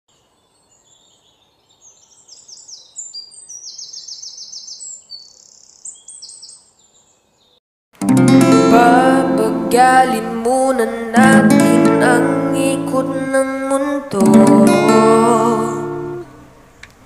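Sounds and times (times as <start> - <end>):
small birds chirping: 0.1 - 7.6.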